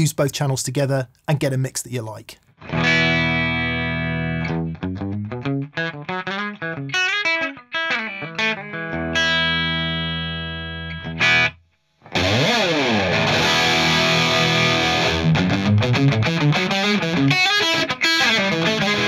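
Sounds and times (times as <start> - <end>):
overdriven electric guitar: 2.6 - 19.0.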